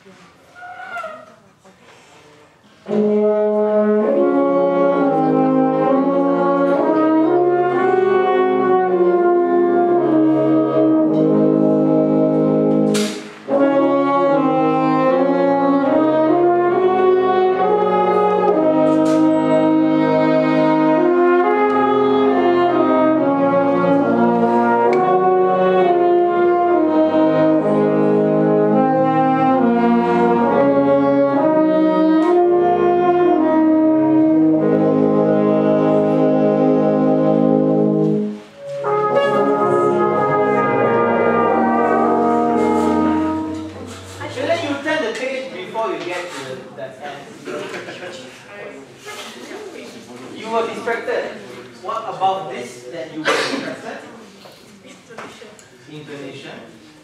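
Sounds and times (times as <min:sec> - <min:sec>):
wind band playing slow chords: 0:02.7 - 0:45.2.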